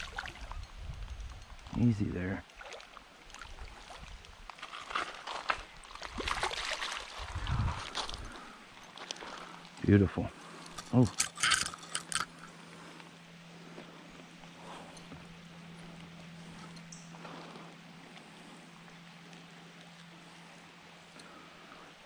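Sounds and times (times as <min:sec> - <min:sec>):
shallow creek ambience: 0:00.0 - 0:22.0
steady low hum: 0:00.0 - 0:22.0
fish splashing in water: 0:05.8 - 0:07.3.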